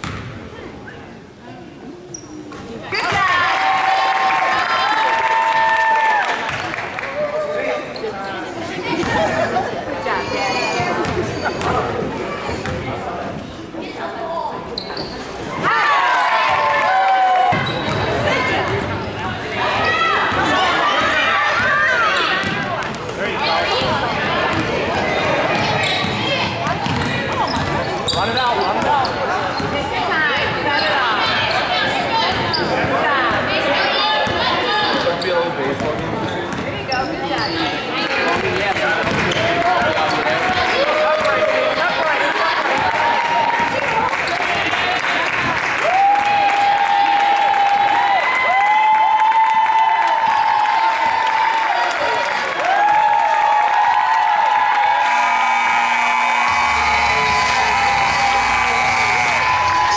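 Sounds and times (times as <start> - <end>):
voices and shouts: 2.9 - 12.5, 15.5 - 35.2, 45.8 - 59.9
long held shouts: 52.6 - 59.9.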